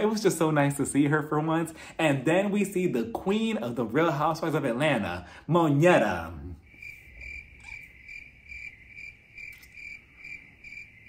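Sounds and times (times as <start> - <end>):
cricket chirping sound effect: 6.6 - 11.0.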